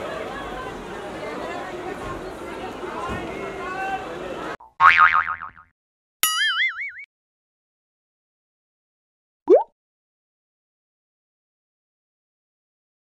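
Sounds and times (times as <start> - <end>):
springy boing: 4.6 - 7.1.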